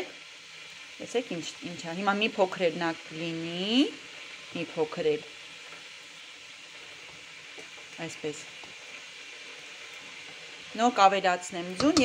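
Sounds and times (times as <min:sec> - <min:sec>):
soup bubbling in a pot: 0:00.0 - 0:12.0.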